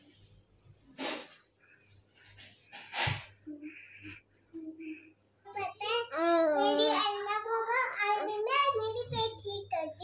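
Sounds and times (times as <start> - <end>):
faint low hum: 0.0 - 10.0
child singing gliding notes: 6.0 - 10.0.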